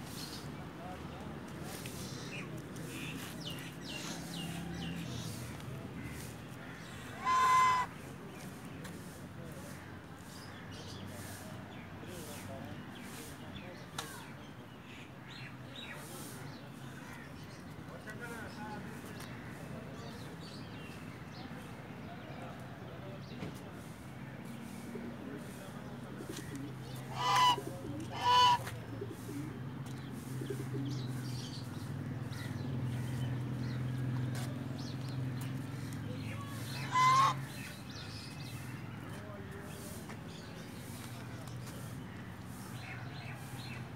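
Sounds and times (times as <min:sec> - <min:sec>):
goose honking: 0:06.9 - 0:07.9, 0:27.1 - 0:28.7, 0:36.6 - 0:37.5.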